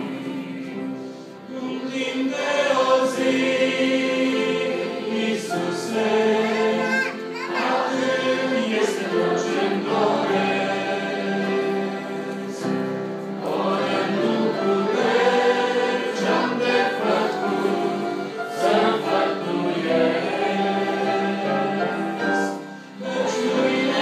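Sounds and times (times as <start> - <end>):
choir and congregation singing hymn: 0.0 - 24.0
instrumental ensemble accompanying: 0.0 - 24.0.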